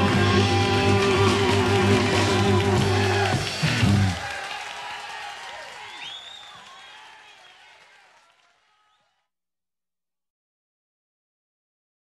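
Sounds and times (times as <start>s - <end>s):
electric blues band playing live: 0.0s - 4.2s.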